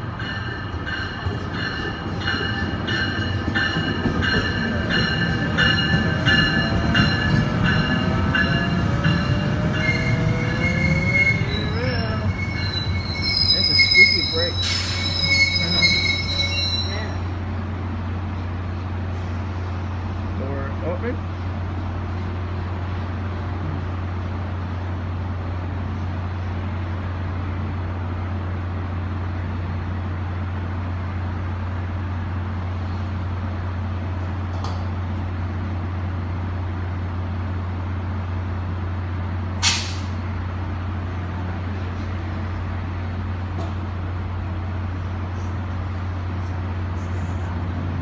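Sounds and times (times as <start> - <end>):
diesel locomotive humming: 0.0 - 48.0
brake air hiss: 39.6 - 40.2.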